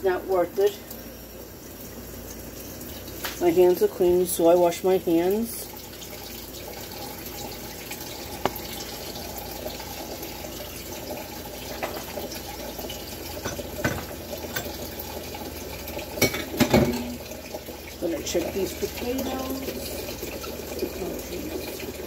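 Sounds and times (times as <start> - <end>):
tap running into sink: 8.4 - 8.9, 11.7 - 12.4, 13.4 - 14.9, 16.2 - 17.2.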